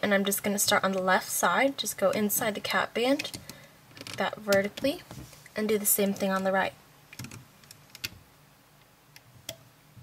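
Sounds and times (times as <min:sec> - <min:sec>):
rubber bands clicking on plastic pins: 0:03.2 - 0:05.0, 0:07.1 - 0:08.2.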